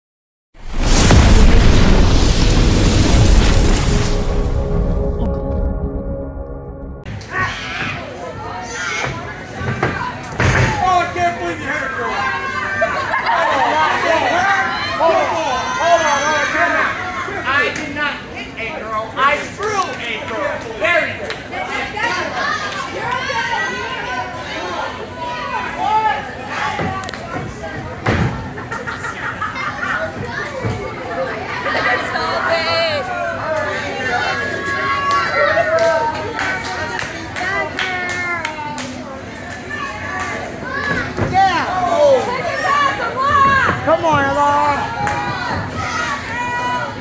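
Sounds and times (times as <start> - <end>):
explosion and rumble effect: 0.6 - 7.2
crowd chattering and calling out: 7.1 - 47.0
children's voices: 28.4 - 43.8.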